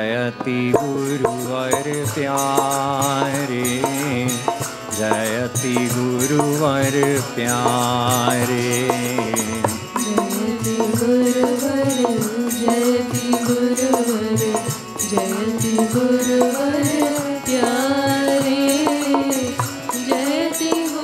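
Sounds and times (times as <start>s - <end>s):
man singing a slow chant: 0.0s - 18.9s
harmonium chords: 0.0s - 21.0s
percussion steady beat: 0.0s - 21.0s.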